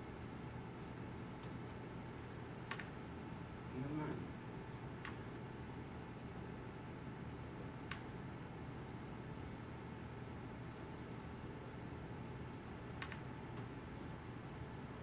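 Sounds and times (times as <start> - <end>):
low hum and hiss: 0.0 - 15.0.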